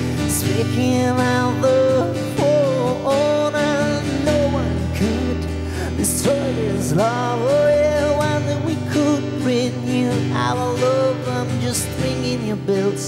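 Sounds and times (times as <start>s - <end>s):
man singing slow song: 0.0s - 13.0s
strummed acoustic guitar: 0.0s - 13.0s.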